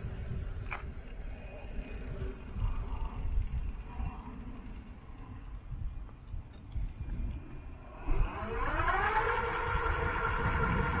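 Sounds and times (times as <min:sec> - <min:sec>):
electric bike motor whining: 0:00.0 - 0:11.0
wind rumbling on microphone: 0:00.0 - 0:11.0.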